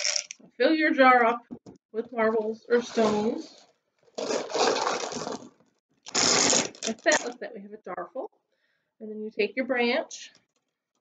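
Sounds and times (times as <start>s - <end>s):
glass marbles clattering: 0.0s - 0.4s.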